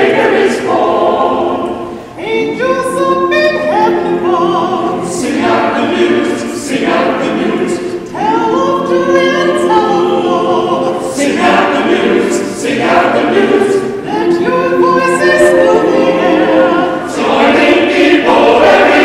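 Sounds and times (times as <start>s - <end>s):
choir singing: 0.0s - 19.0s.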